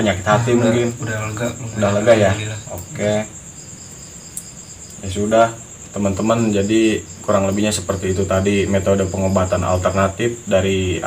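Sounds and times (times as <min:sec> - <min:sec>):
man speaking: 0:00.0 - 0:03.4, 0:05.0 - 0:11.0
crickets chirping: 0:00.0 - 0:11.0.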